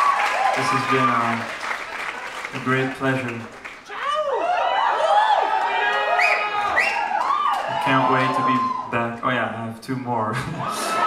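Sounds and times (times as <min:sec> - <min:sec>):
audience applause: 0:00.0 - 0:09.0
man speaking into a microphone: 0:00.6 - 0:01.5, 0:02.5 - 0:03.5, 0:07.7 - 0:11.0.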